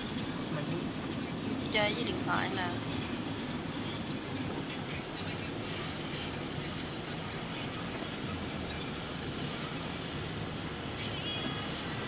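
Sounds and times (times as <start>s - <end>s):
car engine and tyre noise: 0.0s - 12.0s.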